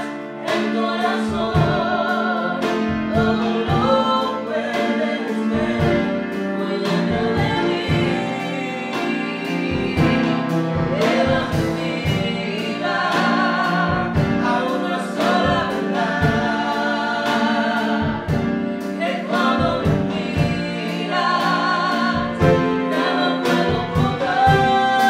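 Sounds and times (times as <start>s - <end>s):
instrumental accompaniment with beat: 0.0s - 25.0s
woman singing with vibrato: 19.0s - 25.0s.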